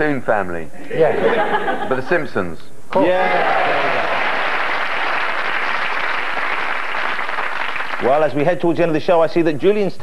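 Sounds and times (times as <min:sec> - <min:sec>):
audience applauding: 0:03.2 - 0:08.4.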